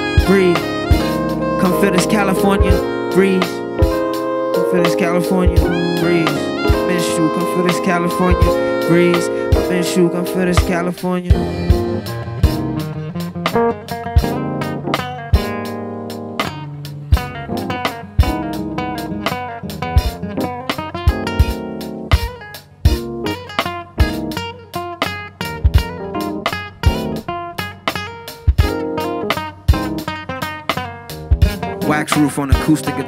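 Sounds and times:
drum beat: 0.0s - 9.9s, 10.6s - 15.8s, 16.4s - 24.4s, 25.0s - 30.2s, 31.1s - 33.0s
acoustic guitar picking: 0.0s - 33.0s
bass: 0.0s - 33.0s.

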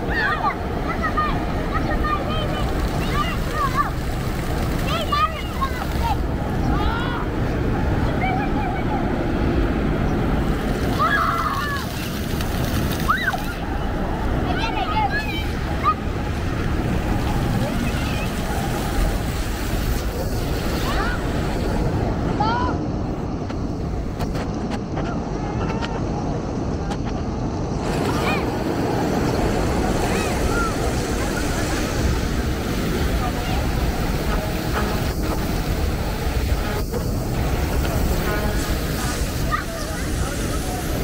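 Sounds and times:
fountain jets splashing on stone: 0.0s - 7.1s, 9.9s - 22.0s, 27.8s - 41.0s
city traffic: 0.0s - 41.0s
people's voices: 0.0s - 41.0s
wind rumbling on microphone: 0.0s - 41.0s.

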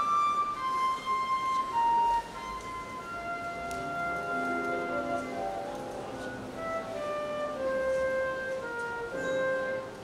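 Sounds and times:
flute playing slow melody: 0.0s - 10.0s
piano accompaniment: 0.0s - 10.0s.

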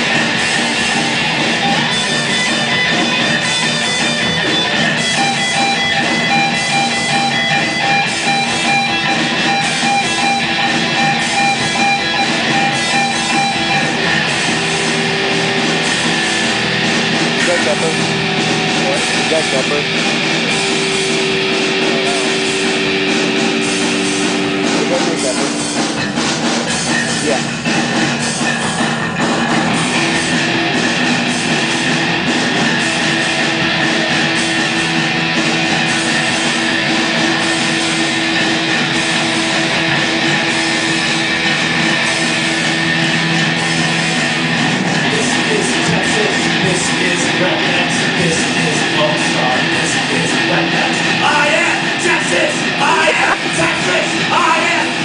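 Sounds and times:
distorted electric guitars: 0.0s - 55.0s
drums: 0.0s - 55.0s
punk rock band playing: 0.0s - 55.0s.

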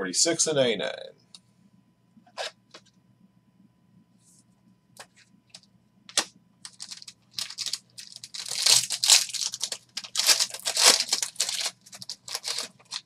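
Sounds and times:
foil wrapper tearing and crinkling: 6.6s - 13.0s.

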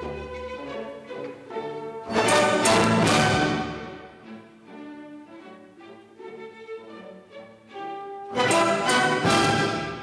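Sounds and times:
orchestral music with strings: 0.0s - 10.0s.

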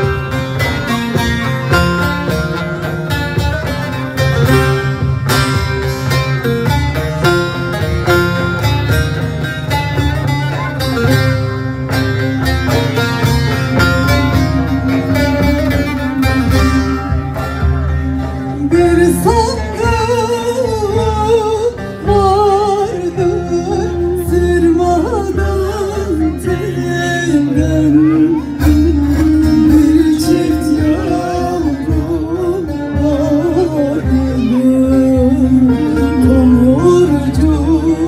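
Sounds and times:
plucked long-necked lutes: 0.0s - 38.0s.

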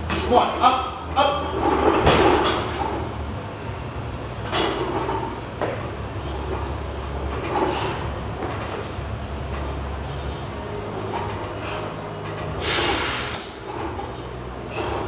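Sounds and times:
iron weight plates clanking: 0.0s - 3.2s, 4.4s - 15.0s
steady low hum: 0.0s - 15.0s.

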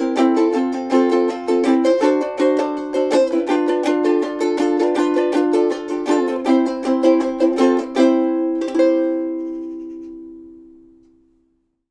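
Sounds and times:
ukulele playing: 0.0s - 11.2s.

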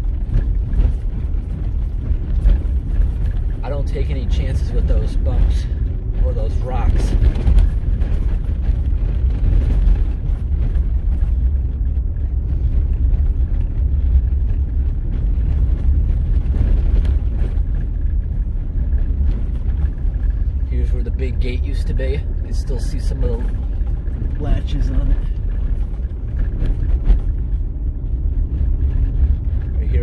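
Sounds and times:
tyres rumbling on gravel: 0.0s - 30.0s
vehicle engine running: 0.0s - 30.0s.

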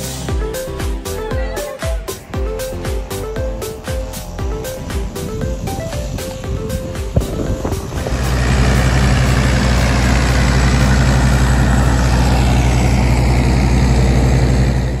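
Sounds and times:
airport machinery drone: 0.0s - 15.0s
background music: 0.0s - 15.0s.

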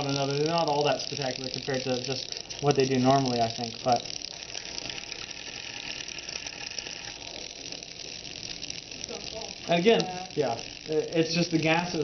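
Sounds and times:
coins rattling on dry ice: 0.0s - 12.0s.

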